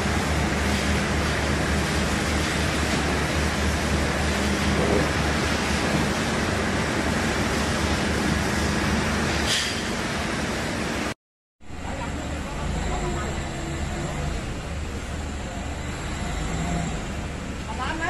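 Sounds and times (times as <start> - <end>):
spinning mill machinery running: 0.0 - 11.1.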